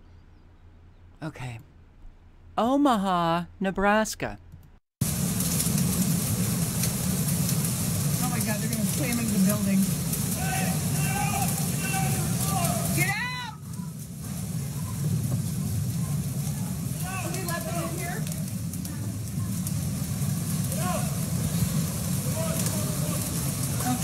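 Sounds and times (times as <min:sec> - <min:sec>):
torrential rain and floodwater rushing: 0:05.0 - 0:24.0
bystanders shouting: 0:08.3 - 0:24.0.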